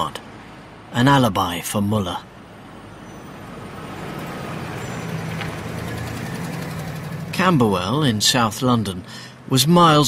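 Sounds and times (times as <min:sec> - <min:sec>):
city street traffic: 0:00.0 - 0:10.0
low steady engine hum: 0:00.0 - 0:10.0.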